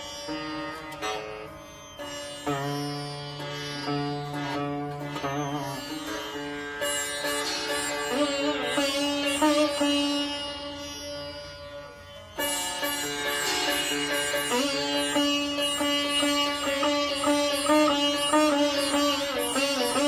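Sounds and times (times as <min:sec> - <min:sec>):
sitar playing: 0:00.0 - 0:20.0.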